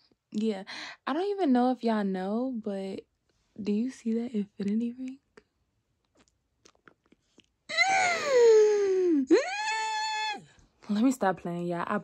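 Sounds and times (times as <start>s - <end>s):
woman wailing: 7.7s - 10.4s.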